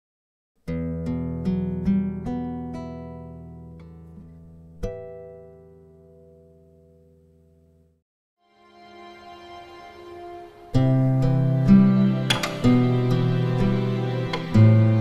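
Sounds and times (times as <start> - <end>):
nylon-string guitar arpeggio: 0.6 - 7.8, 8.6 - 15.0
guitar chord ringing: 0.7 - 15.0.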